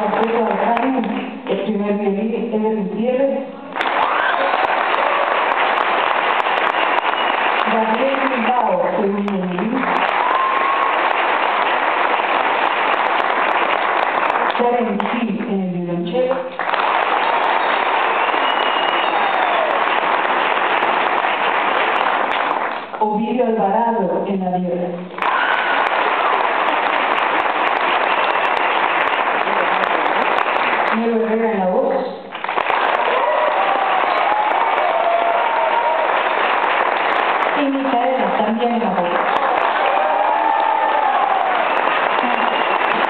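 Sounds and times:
audience applauding: 0.0s - 1.3s, 3.7s - 15.2s, 16.5s - 23.0s, 25.1s - 31.3s, 32.3s - 43.0s
person's voice: 7.6s - 9.8s, 14.6s - 16.5s.

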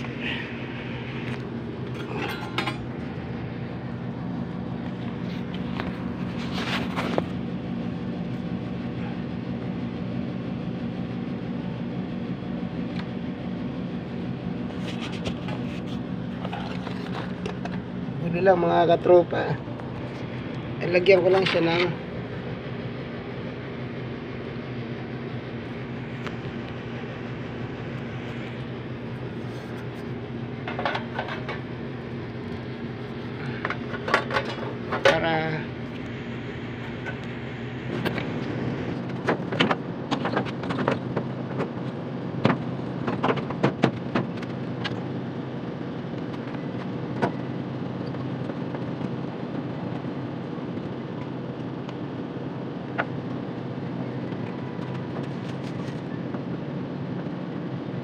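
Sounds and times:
air conditioner unit humming: 0.0s - 58.0s
clicks and clatter on metal casing: 1.2s - 3.0s, 14.7s - 17.9s, 29.4s - 31.7s, 33.4s - 36.1s, 39.0s - 45.1s.

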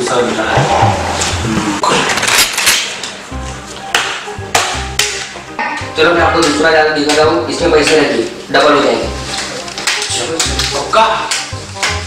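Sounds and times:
background music with percussive beat: 0.5s - 1.9s, 2.8s - 12.0s.

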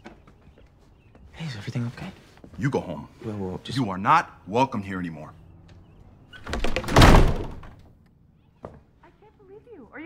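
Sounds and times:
door slamming shut: 6.4s - 7.8s.

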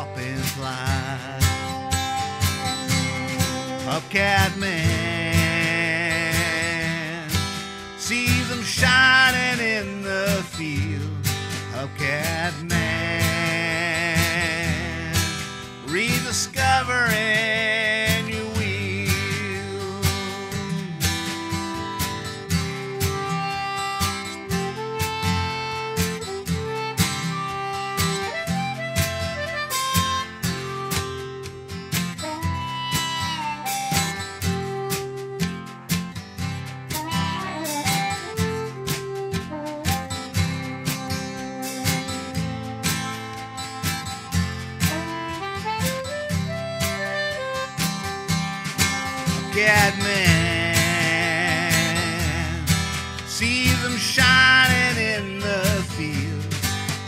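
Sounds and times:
harmonica melody: 0.0s - 57.0s
strummed acoustic guitar: 0.0s - 57.0s.

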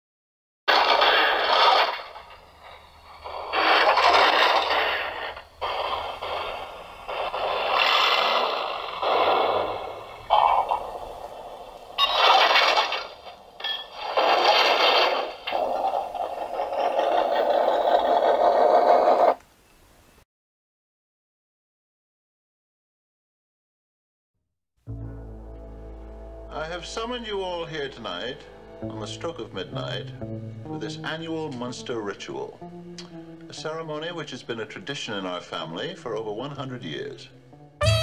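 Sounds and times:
noisy sound effect bursts: 0.7s - 16.8s, 37.8s - 38.0s.

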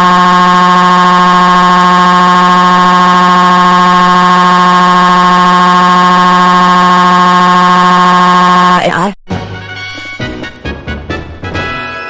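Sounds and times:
cartoon crying wail: 0.0s - 8.4s.

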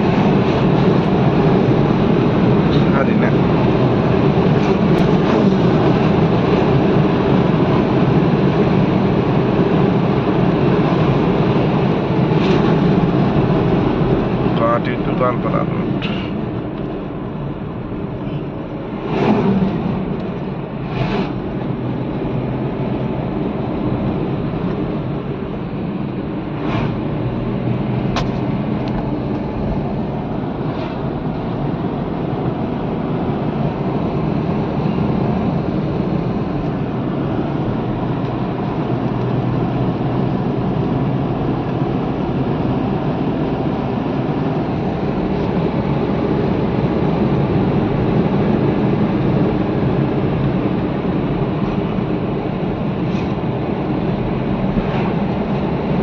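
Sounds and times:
road and engine noise in car: 0.0s - 56.0s.

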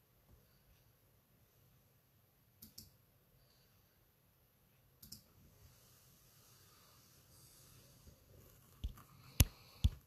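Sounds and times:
faint sharp clicks: 2.6s - 3.0s, 5.0s - 5.3s.

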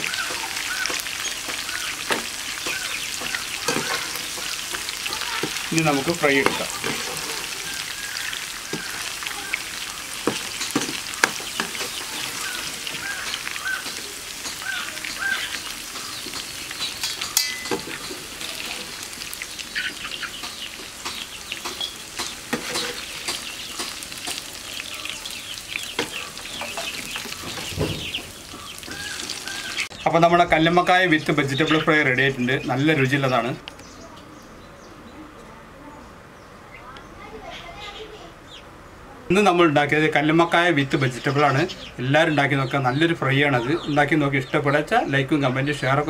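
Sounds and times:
food sizzling in hot oil: 0.0s - 30.0s
metal spoon clinking on pan: 15.5s - 18.2s.

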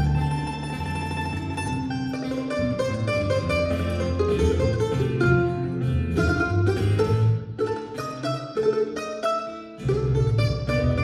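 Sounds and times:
acoustic guitar picking: 0.0s - 11.0s
mandolin picking: 0.0s - 11.0s
plucked bass line: 0.0s - 11.0s.

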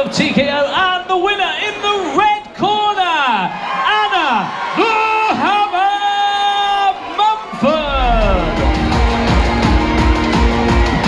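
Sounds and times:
crowd whooping: 3.5s - 11.0s
loud rock music: 7.8s - 11.0s.

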